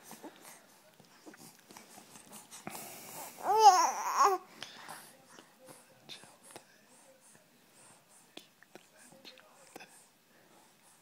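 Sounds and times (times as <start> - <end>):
faint whispering: 4.3 - 11.0.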